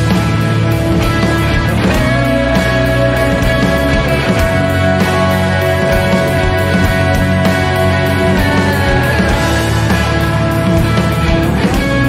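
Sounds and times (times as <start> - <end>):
distorted electric guitar riff: 0.0 - 12.0
rock band backing: 0.0 - 12.0
steady drum beat: 0.0 - 12.0.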